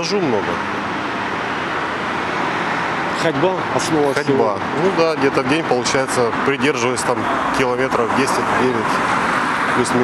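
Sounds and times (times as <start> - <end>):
passing cars: 0.0 - 10.0.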